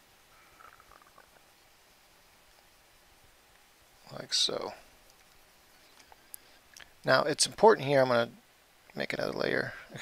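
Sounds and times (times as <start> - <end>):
faint soft sounds: 0.0 - 10.0.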